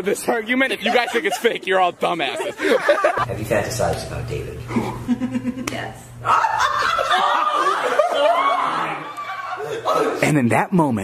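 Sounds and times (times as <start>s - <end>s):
people laughing: 0.0s - 3.3s, 4.7s - 10.2s.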